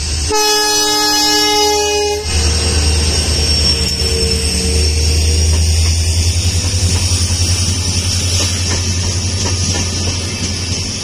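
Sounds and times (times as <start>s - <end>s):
locomotive engine and wheels rumbling: 0.0s - 11.0s
locomotive air horn: 0.3s - 5.5s.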